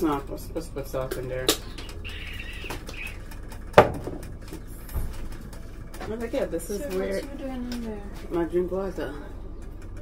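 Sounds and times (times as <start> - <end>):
container knocking on stovetop: 3.8 - 4.2.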